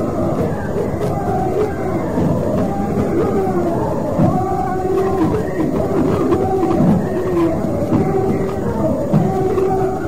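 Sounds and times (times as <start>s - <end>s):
congregation singing a hymn: 0.0s - 10.0s.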